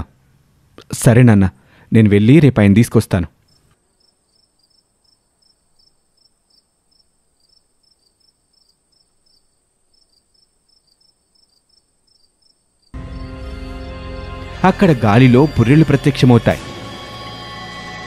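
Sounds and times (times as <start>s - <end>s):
faint cricket chirping: 3.4s - 13.9s.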